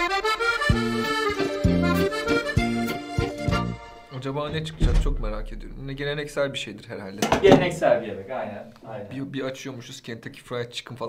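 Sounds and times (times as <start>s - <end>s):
held melody: 0.0s - 5.0s
bouncing low bass notes: 4.5s - 6.4s.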